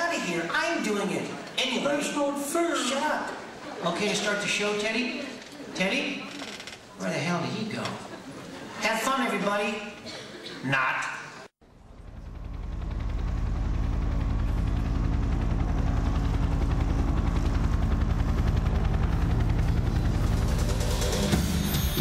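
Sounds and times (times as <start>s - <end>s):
low pulsing rumble: 11.7s - 21.3s
intro music: 11.8s - 22.0s.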